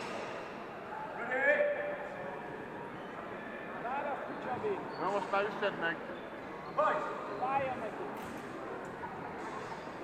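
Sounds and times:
murmur of chatter: 0:00.0 - 0:10.0.

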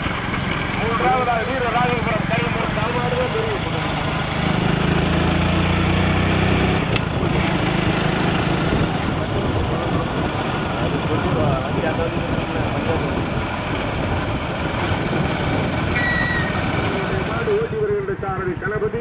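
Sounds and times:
road and wind noise: 0:00.0 - 0:19.0
vehicle engine humming: 0:00.0 - 0:19.0.

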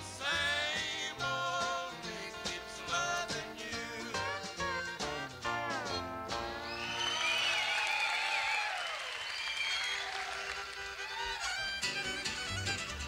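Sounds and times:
country band with fiddle: 0:00.0 - 0:07.4, 0:09.9 - 0:13.0
audience applause: 0:06.6 - 0:11.7.

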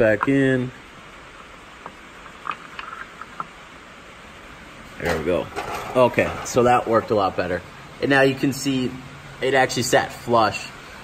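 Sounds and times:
rain on a tin roof: 0:00.0 - 0:11.0.

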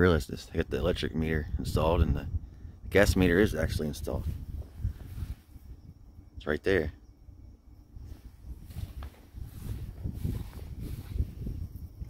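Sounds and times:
wind rumbling on microphone: 0:00.0 - 0:12.0
footsteps on soft dirt: 0:08.1 - 0:12.0.

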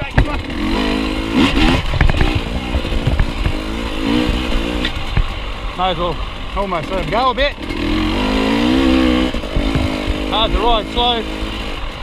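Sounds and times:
dirt bike engine revving: 0:00.0 - 0:12.0
bike knocking over rough ground: 0:01.8 - 0:05.3, 0:09.5 - 0:10.3.

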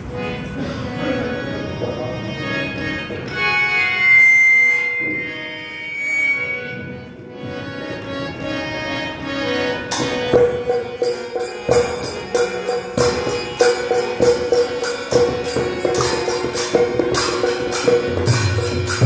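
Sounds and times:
harmonium playing slow melody: 0:00.0 - 0:19.0.

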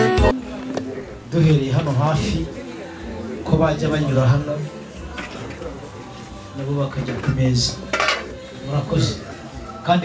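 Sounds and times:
man speaking through microphone: 0:01.0 - 0:04.8, 0:06.6 - 0:07.9, 0:08.6 - 0:10.0
plates and cutlery clinking: 0:07.0 - 0:08.5.

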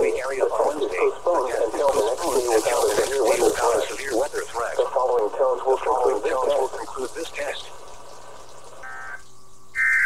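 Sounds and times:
radio voice through small speaker: 0:00.0 - 0:07.7, 0:09.8 - 0:10.0.

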